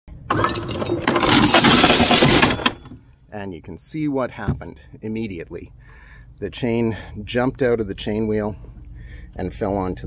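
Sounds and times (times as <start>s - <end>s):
anchor chain rattling through windlass: 0.3s - 2.9s.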